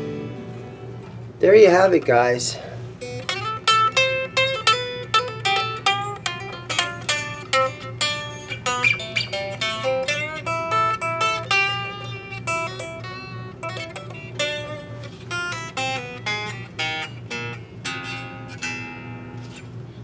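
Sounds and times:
electric guitar notes and chords: 0.0 - 1.4, 2.8 - 19.8.

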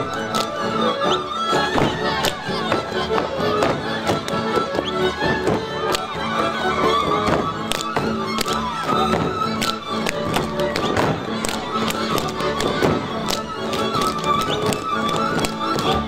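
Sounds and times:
fiddle melody: 0.0 - 16.0
string band drone accompaniment: 0.0 - 16.0.

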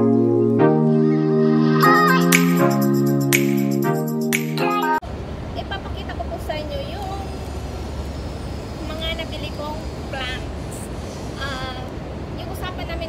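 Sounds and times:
city traffic rumble: 5.0 - 13.0
woman speaking: 8.9 - 10.6, 11.4 - 13.0.

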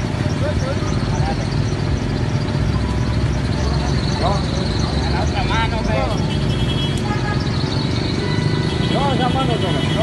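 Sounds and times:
street traffic noise: 0.0 - 10.0
vehicle engine running: 0.0 - 10.0
voices calling out: 0.0 - 10.0.

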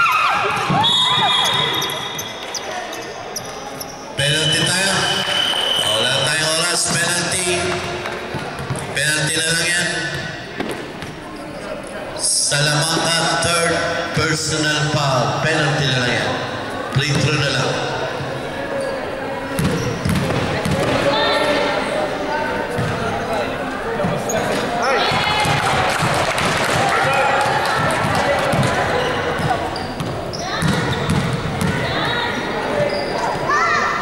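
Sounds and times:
chatter of players and spectators: 0.0 - 34.0.

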